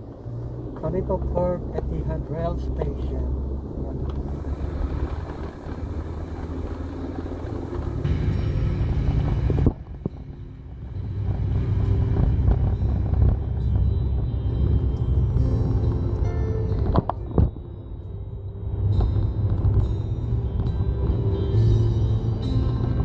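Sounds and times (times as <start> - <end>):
car engine and road noise: 0.0 - 23.0.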